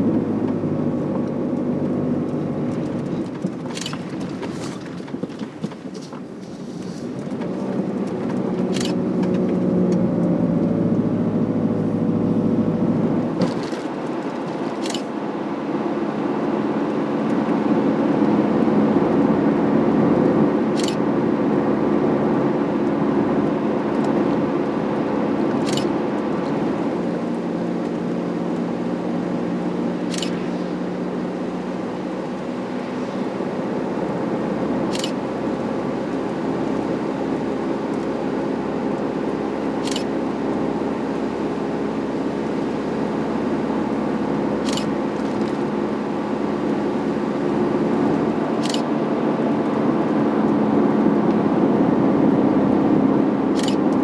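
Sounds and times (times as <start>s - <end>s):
tyre and road noise: 0.0s - 54.0s
van engine hum: 0.0s - 54.0s.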